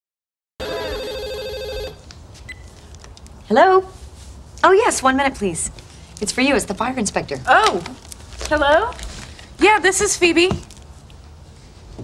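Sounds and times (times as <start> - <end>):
cordless telephone ringing: 0.6 - 2.0.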